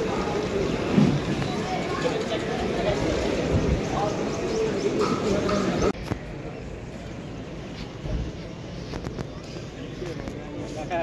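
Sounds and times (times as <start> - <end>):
birds chirping: 0.0 - 8.0
crowd voices in hall: 0.0 - 11.0.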